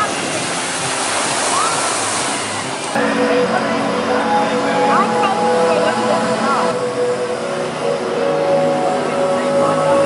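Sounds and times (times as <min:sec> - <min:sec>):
rushing falling water: 0:00.0 - 0:10.0.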